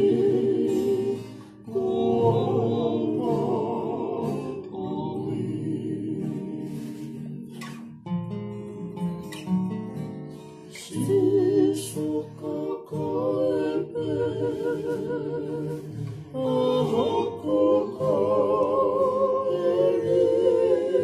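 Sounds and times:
men singing in harmony: 0:00.0 - 0:07.6, 0:10.9 - 0:21.0
strummed acoustic guitar: 0:00.0 - 0:21.0.

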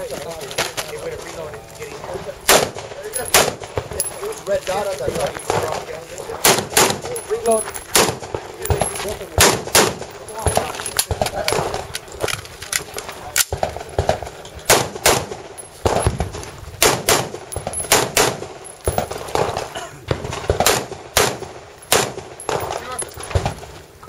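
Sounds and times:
rifle shots echoing: 0:01.9 - 0:23.8.

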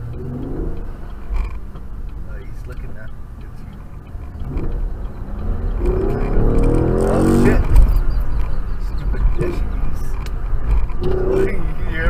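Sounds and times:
car engine accelerating hard: 0:00.0 - 0:12.0
road rumble: 0:00.0 - 0:12.0.

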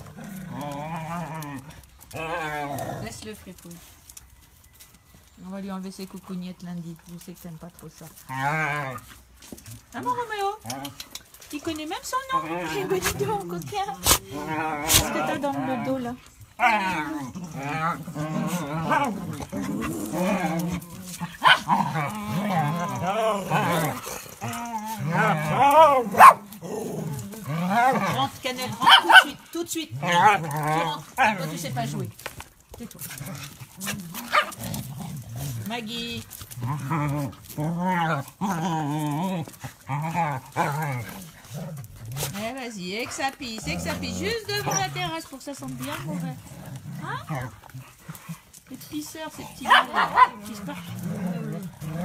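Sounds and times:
dog grumbling: 0:12.3 - 0:28.9, 0:43.1 - 0:48.6, 0:49.4 - 0:52.0.

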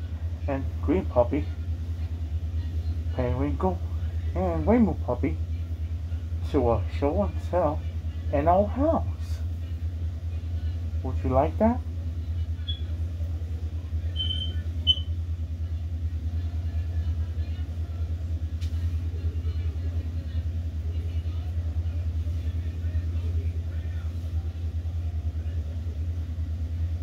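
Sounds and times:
steady low rumble: 0:00.0 - 0:27.0.

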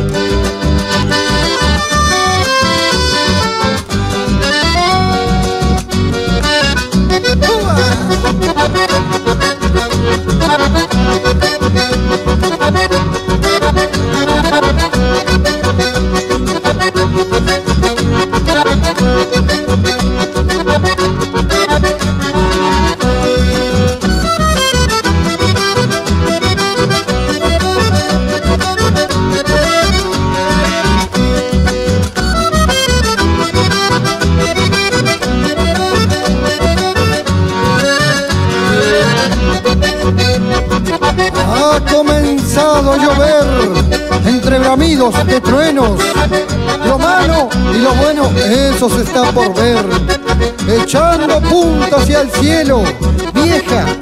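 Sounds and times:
acoustic bass: 0:00.0 - 0:54.0
button accordion melody: 0:00.0 - 0:54.0
guitar: 0:00.0 - 0:54.0.

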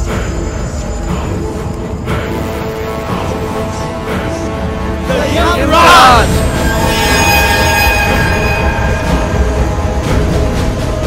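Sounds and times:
high metallic tones: 0:05.8 - 0:11.0.

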